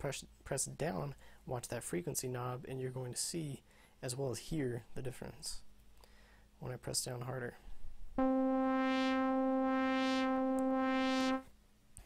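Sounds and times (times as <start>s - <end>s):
synth note with filter sweep: 8.2s - 11.5s.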